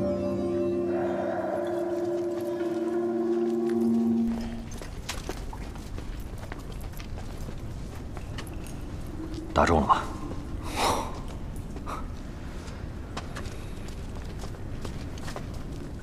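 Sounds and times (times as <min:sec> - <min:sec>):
ambient film score drone: 0:00.0 - 0:05.0, 0:08.0 - 0:13.1
low rumbling cave ambience: 0:00.0 - 0:16.0.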